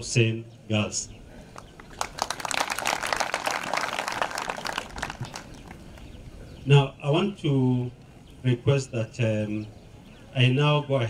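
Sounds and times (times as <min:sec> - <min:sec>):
crowd applauding: 0:01.7 - 0:06.2.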